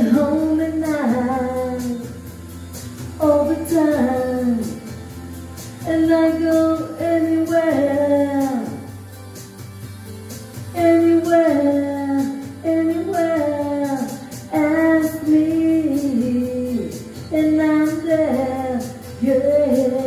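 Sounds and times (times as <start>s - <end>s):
woman singing into a microphone: 0.0s - 2.2s, 3.2s - 5.0s, 5.8s - 8.9s, 10.7s - 20.0s
backing music: 0.0s - 20.0s.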